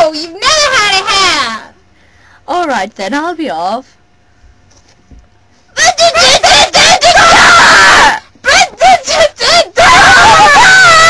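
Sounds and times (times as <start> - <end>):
person screaming: 6.8 - 8.3, 9.8 - 11.0.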